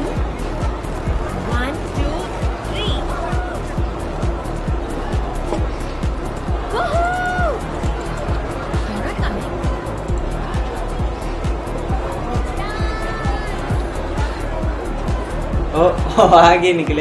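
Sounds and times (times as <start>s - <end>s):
pop song with fast bass beat: 0.0s - 17.0s.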